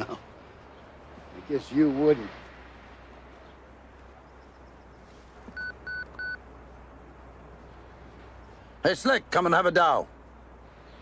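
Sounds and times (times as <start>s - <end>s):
short electronic beeps: 5.6s - 6.4s.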